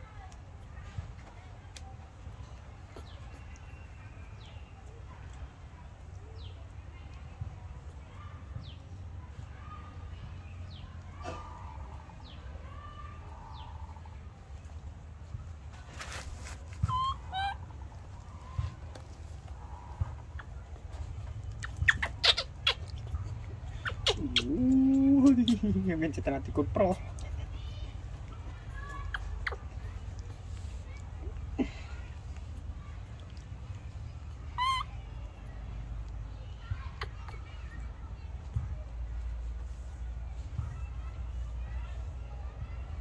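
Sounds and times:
baby monkey squeaky calls: 0:16.8 - 0:17.7, 0:21.4 - 0:24.6, 0:29.0 - 0:29.8, 0:34.5 - 0:35.0.

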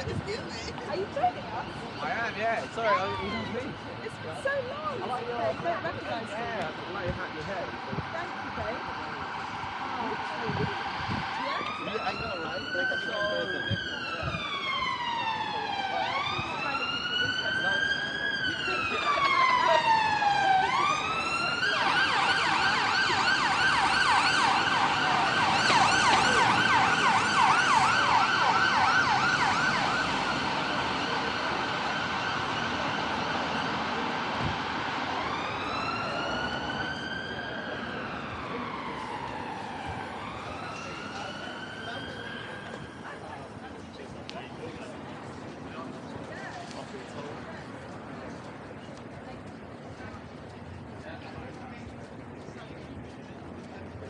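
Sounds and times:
siren slow wail: 0:00.0 - 0:03.8, 0:06.9 - 0:43.5
street traffic noise: 0:00.0 - 0:54.0
siren fast yelp: 0:10.6 - 0:33.7.

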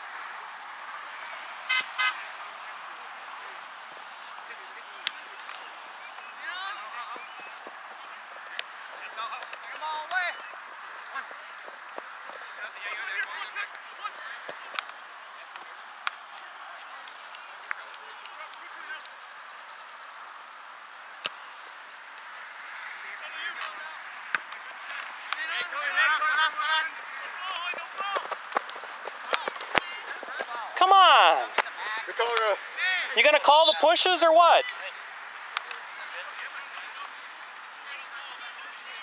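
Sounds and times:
people calling out: 0:24.9 - 0:34.8
loud shout: 0:29.8 - 0:32.1.

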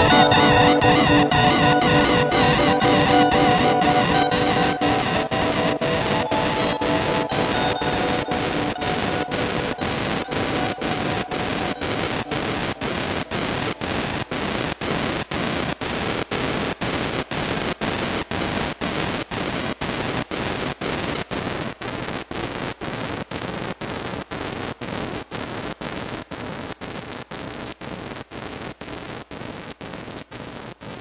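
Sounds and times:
stuttering static guitar noise: 0:00.0 - 0:31.0.

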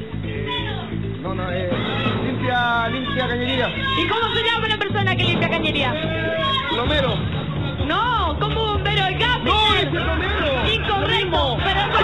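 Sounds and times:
background music: 0:00.0 - 0:12.0
people talking over one another: 0:00.0 - 0:12.0.

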